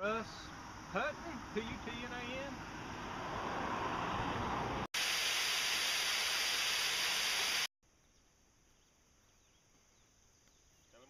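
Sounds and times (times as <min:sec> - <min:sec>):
steady hiss: 0:05.0 - 0:07.7.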